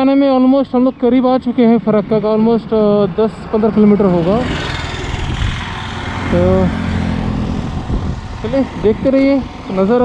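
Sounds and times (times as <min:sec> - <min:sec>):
motorcycle engine rumble: 0:00.0 - 0:10.0
wind and road noise: 0:00.0 - 0:10.0.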